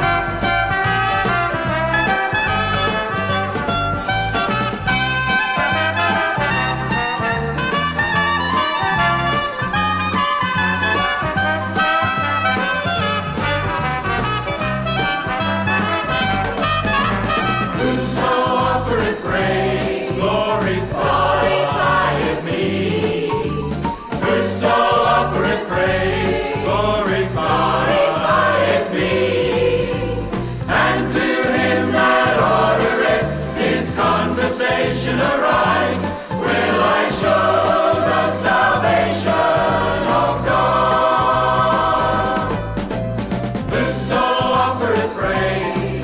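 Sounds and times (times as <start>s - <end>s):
choir singing with accompaniment: 4.8s - 12.7s, 17.5s - 46.0s.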